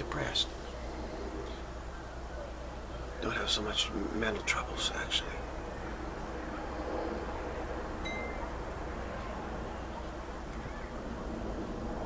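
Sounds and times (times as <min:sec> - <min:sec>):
low background hum: 0:00.0 - 0:12.0
short high chime: 0:08.0 - 0:08.4.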